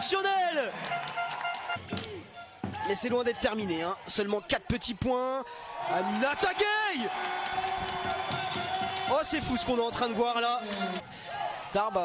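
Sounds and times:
voices: 0:01.8 - 0:12.0.

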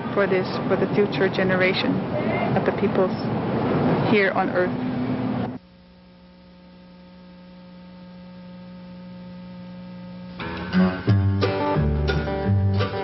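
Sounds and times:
steady electrical hum: 0:00.0 - 0:13.0
acoustic guitar music: 0:10.3 - 0:13.0.

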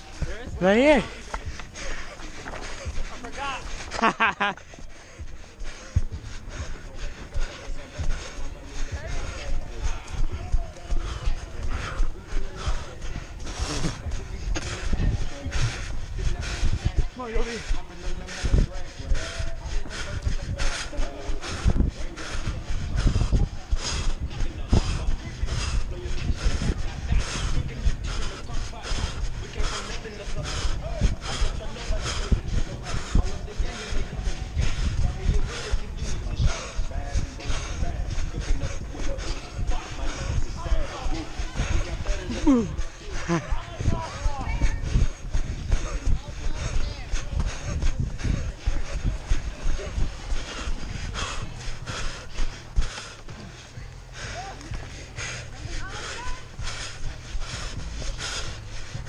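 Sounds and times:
clothing rumbling on microphone: 0:17.8 - 0:59.0.

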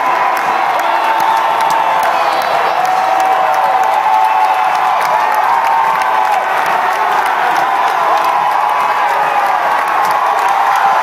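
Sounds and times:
people clapping: 0:00.0 - 0:11.0
stadium crowd cheering and yelling: 0:00.0 - 0:11.0.

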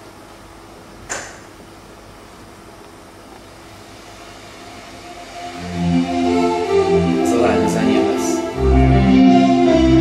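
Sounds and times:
even hiss: 0:03.6 - 0:08.8.

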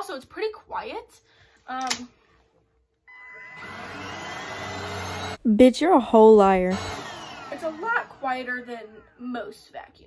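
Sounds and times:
stick vacuum motor whining: 0:03.1 - 0:05.5, 0:06.2 - 0:09.3.

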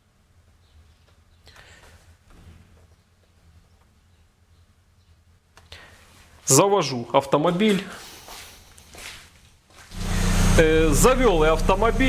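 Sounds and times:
steady low hum: 0:09.9 - 0:12.0.

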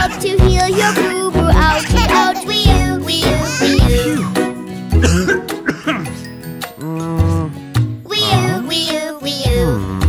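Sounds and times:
children's song backing music: 0:00.0 - 0:10.0
cartoon man coughing: 0:03.5 - 0:04.4, 0:05.0 - 0:06.2.

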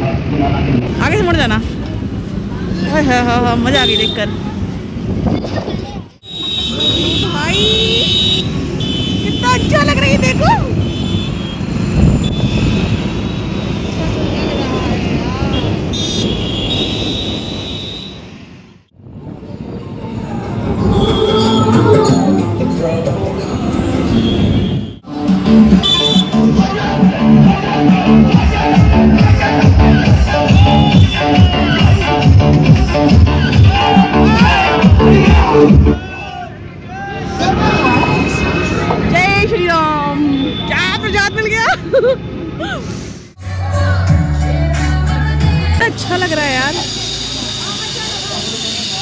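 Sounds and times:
wind and road noise: 0:00.0 - 0:43.4
traffic: 0:00.0 - 0:49.0
indistinct chatter of voices: 0:26.3 - 0:39.1, 0:43.4 - 0:49.0.

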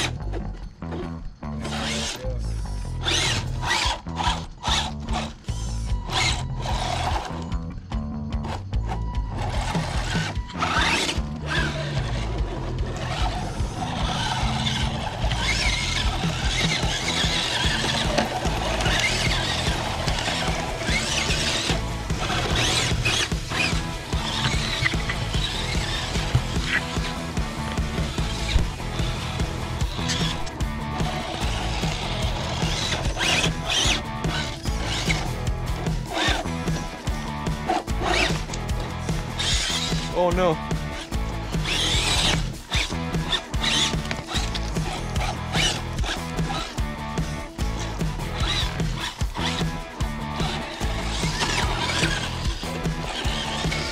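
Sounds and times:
background music: 0:00.0 - 0:53.9
electric motor whining: 0:00.0 - 0:53.9.

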